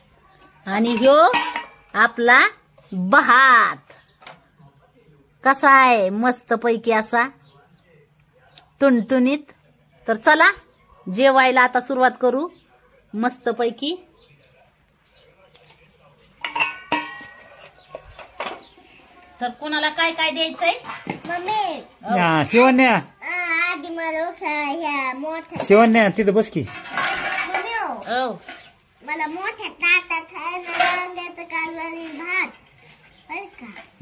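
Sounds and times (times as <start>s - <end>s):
metal dishes clanking: 0.4s - 2.2s, 16.4s - 18.8s, 20.8s - 21.5s, 25.6s - 28.8s, 30.5s - 31.4s.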